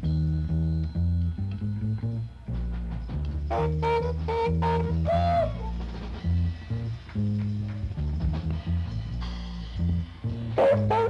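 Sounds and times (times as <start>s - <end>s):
bass notes: 0.0s - 11.0s
jazz band playing: 2.4s - 11.0s
horn phrase: 3.5s - 6.0s, 10.5s - 11.0s.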